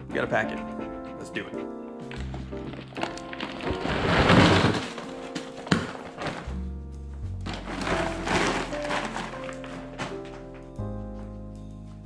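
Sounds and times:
background music: 0.0 - 12.0
packages clattering and rustling: 2.1 - 6.7, 7.3 - 10.8.

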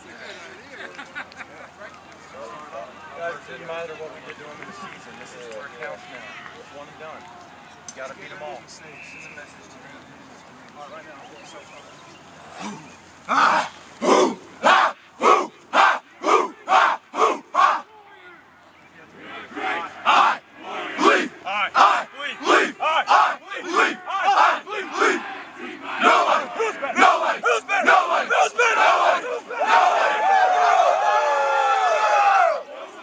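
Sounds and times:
group yell: 12.6 - 17.9, 19.5 - 33.0
team chanting rhythmically: 13.3 - 17.9, 19.2 - 33.0.

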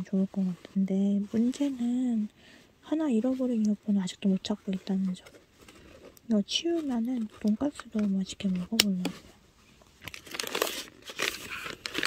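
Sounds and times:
plastic wrappers crinkling: 9.9 - 12.0.

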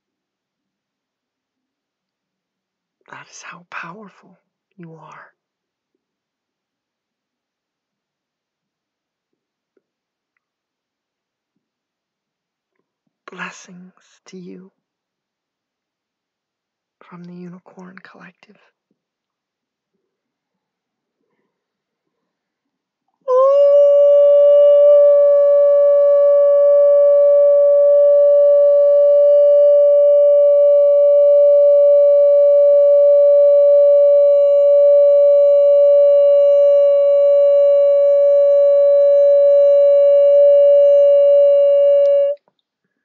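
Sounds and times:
loud steady pitched tone: 23.3 - 42.4.

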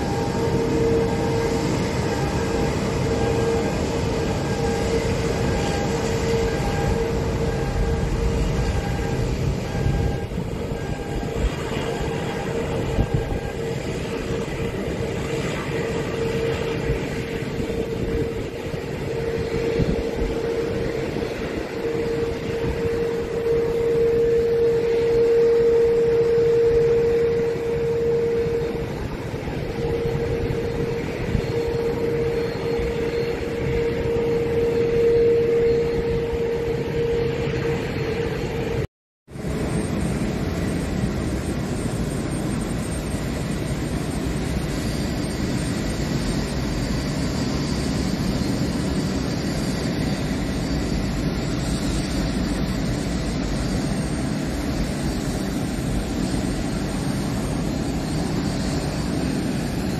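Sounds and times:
distant jet engine whine: 0.0 - 59.9.

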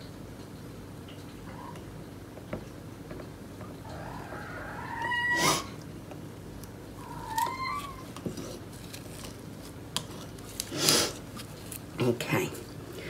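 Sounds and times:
breathy noise rush: 3.8 - 5.8
cat meowing: 3.9 - 5.8, 7.0 - 8.2.

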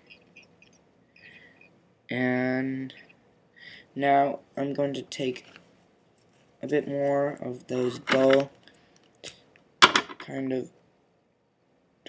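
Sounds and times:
faint rustles and ticks: 0.0 - 1.8, 4.6 - 9.7.

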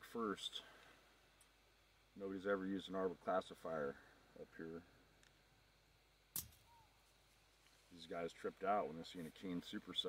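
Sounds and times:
sharp click: 6.4 - 6.6.

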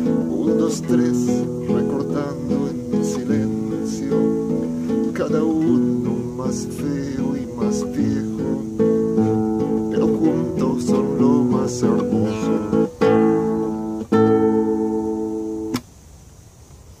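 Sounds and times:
classical guitar playing: 0.0 - 15.8.

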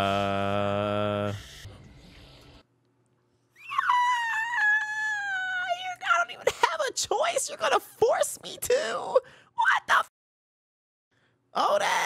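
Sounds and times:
man screaming in falsetto: 3.6 - 5.7.

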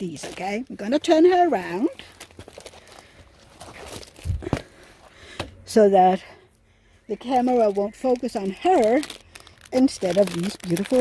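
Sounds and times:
canvas rustling: 7.3 - 11.0.

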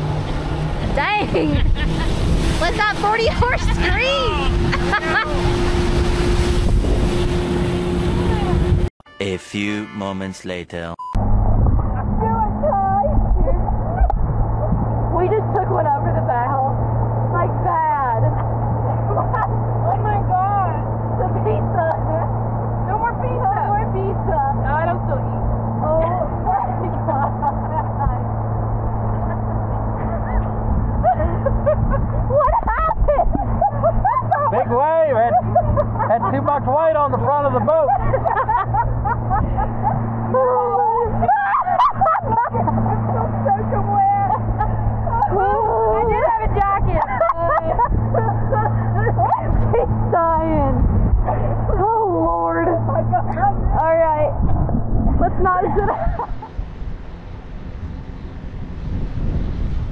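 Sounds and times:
outboard motor running: 0.0 - 8.9, 11.2 - 59.9
voices and laughter: 0.8 - 5.7, 11.9 - 56.6.

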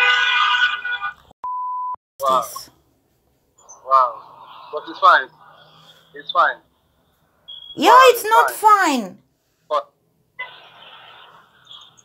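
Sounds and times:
short electronic beep: 7.5 - 7.8.

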